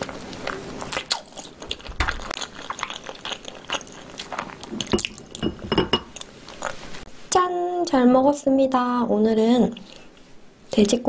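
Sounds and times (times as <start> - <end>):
chewing and crunching meat: 0.0 - 6.9.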